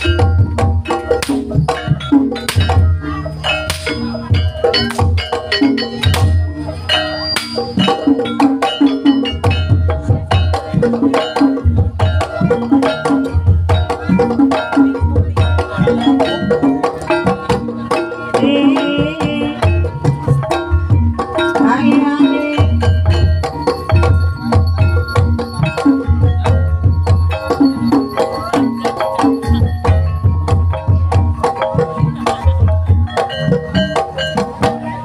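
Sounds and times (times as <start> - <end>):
hand drum strokes: 0.0 - 35.0
ringing metallophone notes: 0.0 - 35.0
wavering high melodic line: 0.0 - 35.0.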